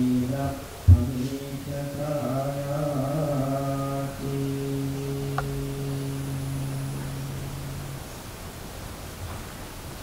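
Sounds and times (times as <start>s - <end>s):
man chanting a low note: 0.0s - 8.1s.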